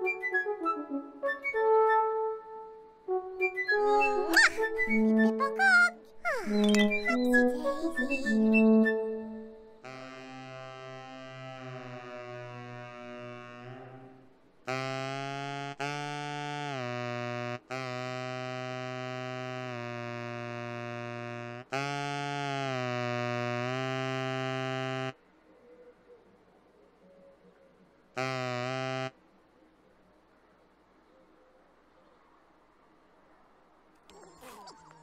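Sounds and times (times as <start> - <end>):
synthesised horn-like bird call: 0.0 - 25.2, 28.1 - 29.2.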